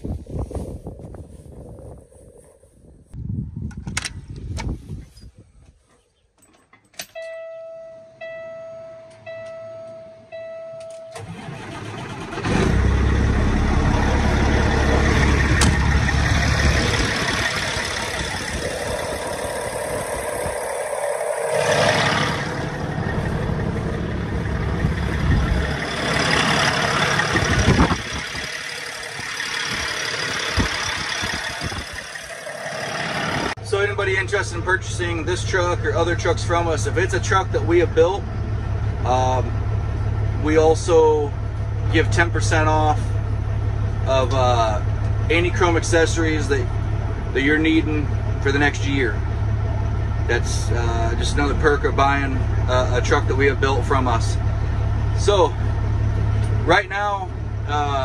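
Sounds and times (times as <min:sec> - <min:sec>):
diesel engine idling: 0:11.1 - 0:58.0.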